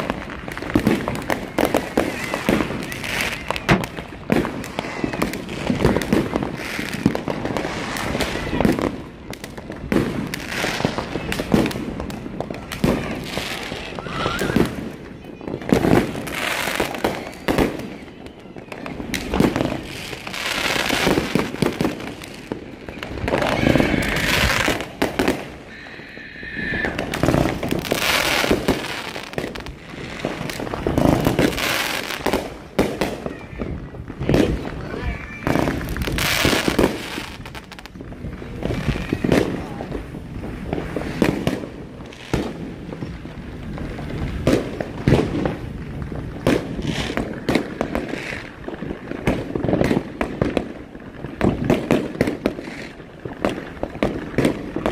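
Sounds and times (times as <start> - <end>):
fireworks bangs and crackling: 0.0 - 54.9.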